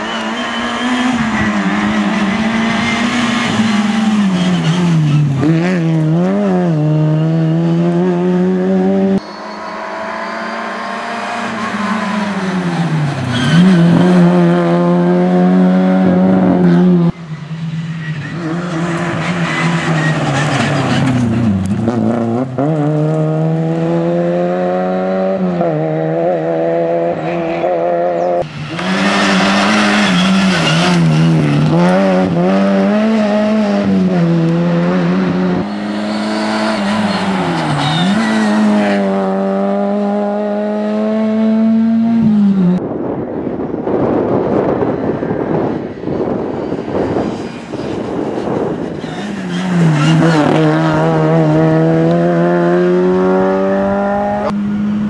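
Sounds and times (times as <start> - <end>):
rally car engine revving: 0.0 - 42.8, 46.3 - 55.0.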